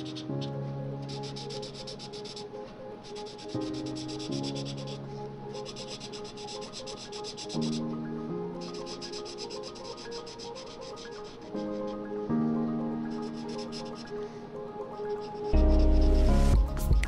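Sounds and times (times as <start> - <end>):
marker rubbing on paper: 0.0 - 8.0, 8.6 - 12.1, 13.1 - 14.2
soft background music: 0.0 - 17.0.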